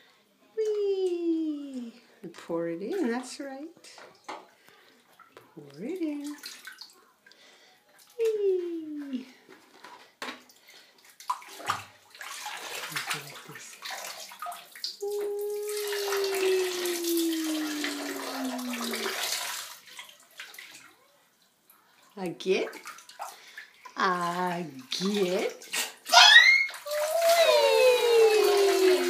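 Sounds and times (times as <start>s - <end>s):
water pouring into bath water: 10.5s - 29.0s
person calling wee: 15.0s - 19.2s, 26.1s - 29.0s.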